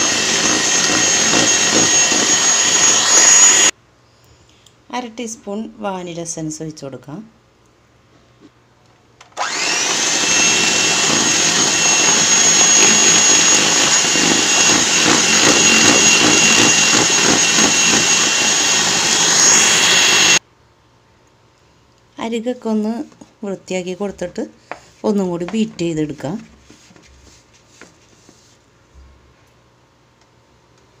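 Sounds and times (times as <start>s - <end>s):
electric hand mixer whirring: 0.0s - 3.7s, 9.4s - 20.4s.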